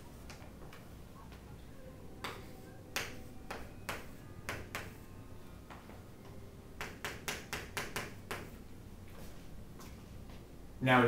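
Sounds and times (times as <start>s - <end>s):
chalk tapping on chalkboard: 2.2s - 5.0s, 6.8s - 8.6s.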